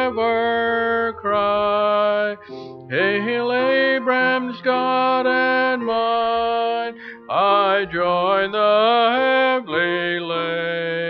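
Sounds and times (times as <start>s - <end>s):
hymn sung slowly: 0.0s - 11.0s.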